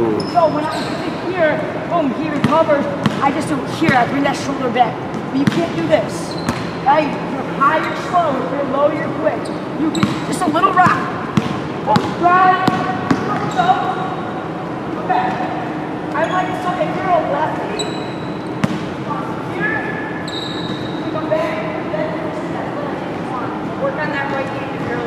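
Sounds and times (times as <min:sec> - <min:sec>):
people talking: 0:00.0 - 0:11.2, 0:11.9 - 0:14.2, 0:15.0 - 0:17.9, 0:21.1 - 0:25.0
basketball bouncing on hardwood floor: 0:05.4 - 0:05.7, 0:10.8 - 0:13.5
short high squeaks: 0:17.7 - 0:18.5, 0:20.2 - 0:21.1.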